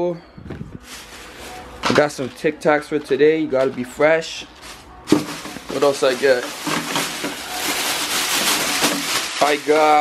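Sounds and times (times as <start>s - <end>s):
plastic bag rustling and crinkling: 0.5s - 10.0s.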